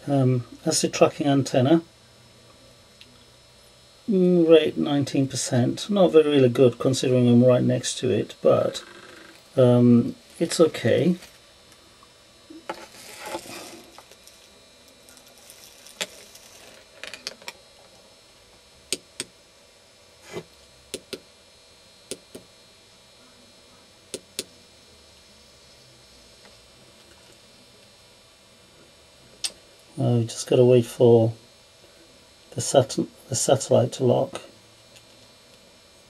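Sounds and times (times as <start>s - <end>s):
faint electrical hum: 0.0s - 36.0s.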